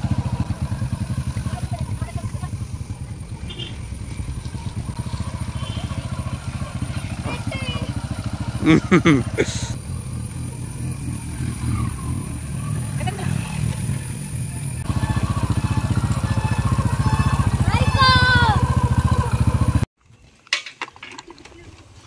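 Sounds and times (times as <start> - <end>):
motorcycle engine running: 0.0 - 19.9.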